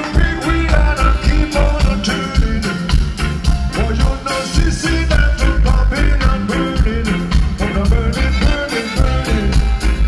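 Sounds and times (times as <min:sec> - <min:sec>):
live reggae band playing: 0:00.0 - 0:10.0.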